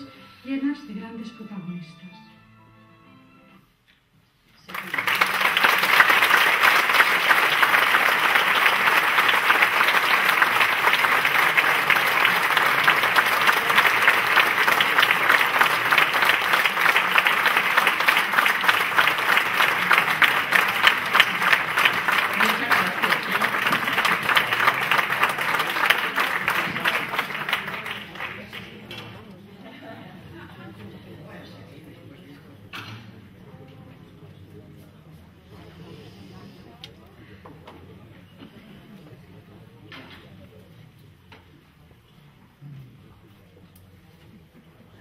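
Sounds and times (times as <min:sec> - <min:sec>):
audience applauding: 0:04.6 - 0:29.0.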